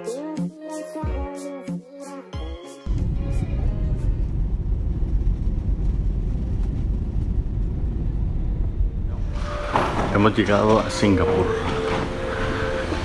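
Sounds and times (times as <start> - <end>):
music: 0.0 - 4.3, 9.1 - 13.0
vehicle rumble: 2.9 - 10.3.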